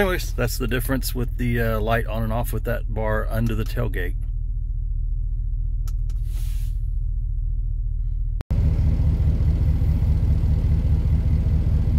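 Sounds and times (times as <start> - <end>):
brief hiss: 6.2 - 6.8.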